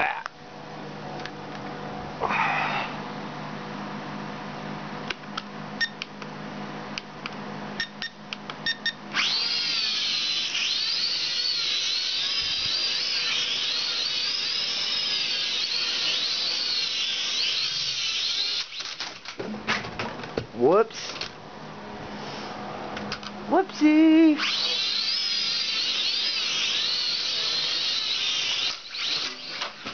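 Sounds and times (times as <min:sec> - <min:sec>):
toy drone motors whining: 0:08.7 - 0:19.4, 0:23.8 - 0:29.9.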